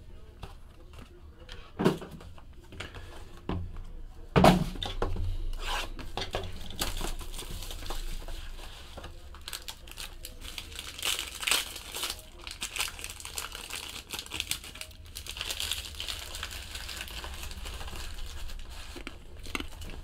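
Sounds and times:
foil pack crinkling: 6.6s - 20.0s.

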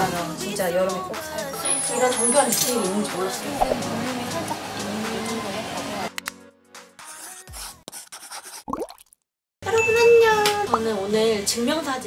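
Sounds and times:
quick rising bloop: 3.6s - 3.9s.

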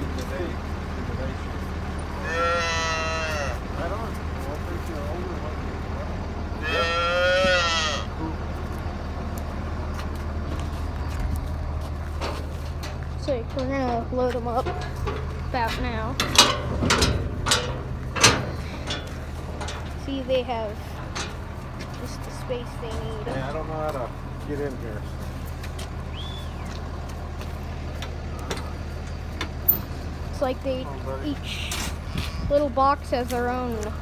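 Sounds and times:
calf bawling: 2.2s - 3.6s, 6.6s - 8.2s
metal gate latch clacking: 16.2s - 19.8s.

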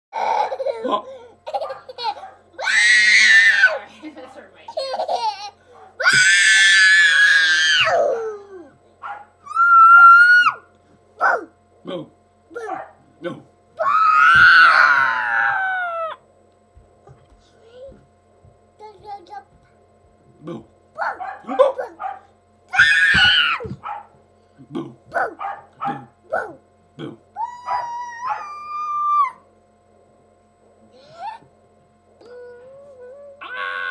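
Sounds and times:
toddler squealing and laughing: 0.2s - 3.8s, 4.8s - 8.7s, 9.4s - 10.6s, 13.8s - 16.2s, 22.7s - 23.7s, 27.4s - 29.4s
high-pitched howl: 6.0s - 8.6s, 9.4s - 10.7s, 13.8s - 16.2s, 27.4s - 29.4s, 33.2s - 33.9s.

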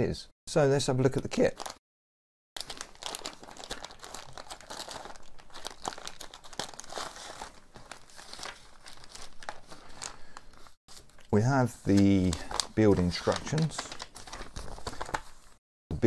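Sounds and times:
plastic bags crinkling: 1.5s - 1.7s, 2.6s - 15.4s.

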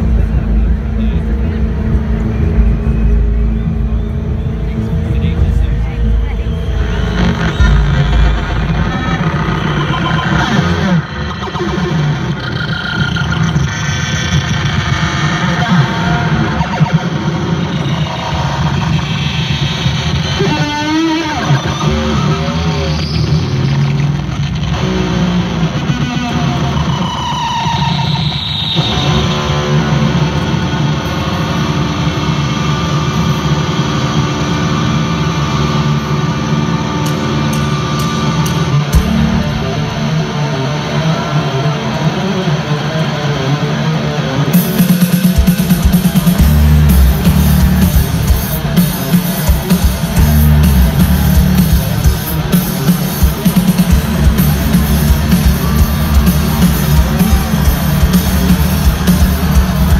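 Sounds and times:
electric guitar with effects: 0.0s - 59.9s
loud live rock music: 0.0s - 59.9s.

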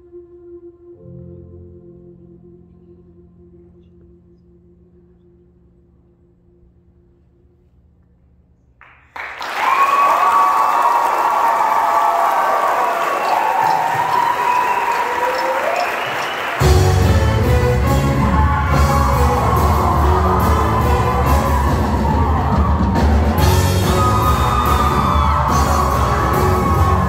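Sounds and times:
audience applause and cheering: 8.8s - 27.0s
live band heavy beat: 16.5s - 27.0s.

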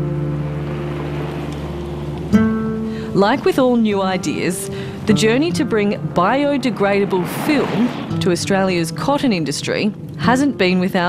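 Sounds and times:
steady hiss: 0.0s - 9.0s
sustained chord background music: 0.0s - 11.0s.

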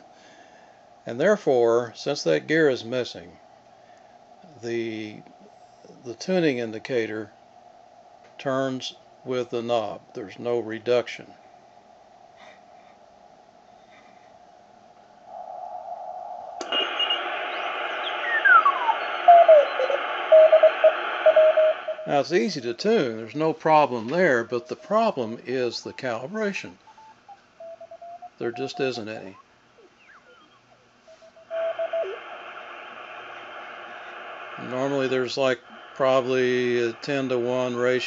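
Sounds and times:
radio receiver hiss: 4.4s - 7.3s, 15.2s - 38.0s
morse code tone: 16.6s - 32.2s.

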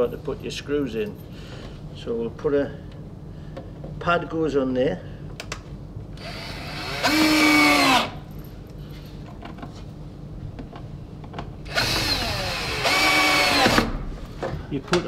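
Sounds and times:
cordless drill driving screws: 6.2s - 8.2s, 11.7s - 13.9s.

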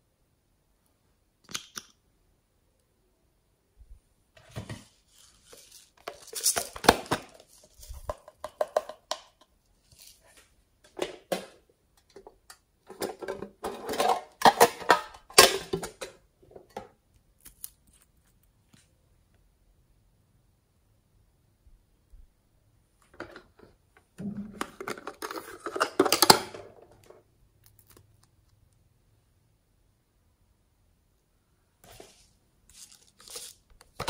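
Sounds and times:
plastic bottles clicking and rattling: 5.5s - 9.5s, 10.8s - 16.9s, 23.1s - 27.2s, 32.7s - 34.0s.

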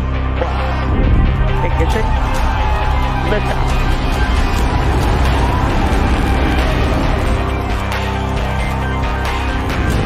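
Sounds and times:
music soundtrack: 0.0s - 10.0s
rocket engines roaring: 1.1s - 10.0s.

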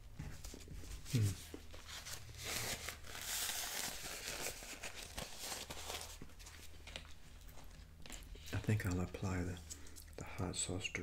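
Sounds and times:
soft rustling and handling: 0.0s - 10.8s
plastic packet crinkling and tearing: 1.1s - 10.2s.

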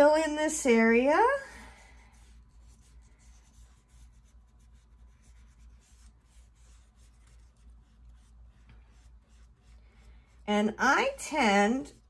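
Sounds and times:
low steady hum: 0.0s - 12.0s
paintbrush scratching on paper: 0.7s - 12.0s.

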